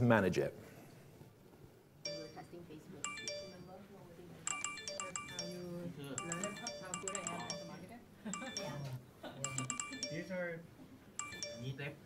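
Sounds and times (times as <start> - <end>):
phone notification chimes: 2.1 - 3.8, 4.5 - 10.5, 11.2 - 11.9.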